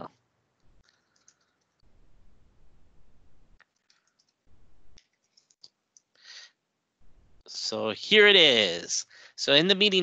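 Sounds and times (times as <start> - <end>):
computer keyboard clicks: 0.8 - 1.8, 3.6 - 4.4.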